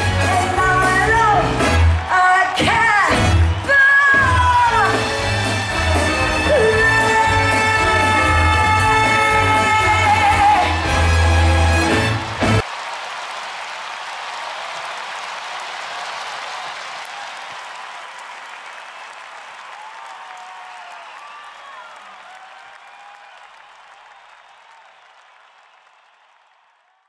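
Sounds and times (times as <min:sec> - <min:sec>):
audience applauding: 0:00.0 - 0:27.0
audience cheering: 0:00.0 - 0:27.0.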